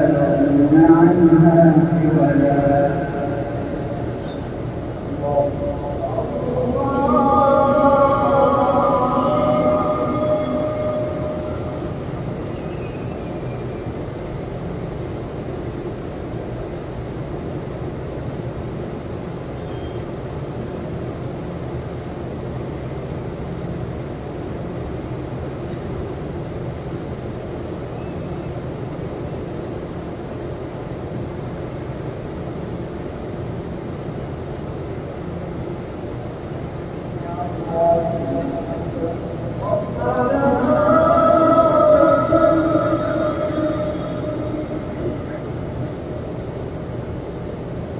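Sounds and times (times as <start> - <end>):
person chanting: 0.0 - 3.9, 5.1 - 12.5, 37.2 - 46.2
crowd murmur: 37.2 - 46.4.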